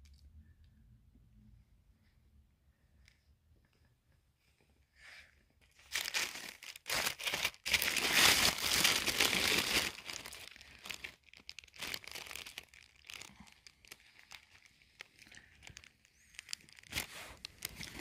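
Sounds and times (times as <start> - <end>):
paper rustling and crinkling: 5.6 - 18.0.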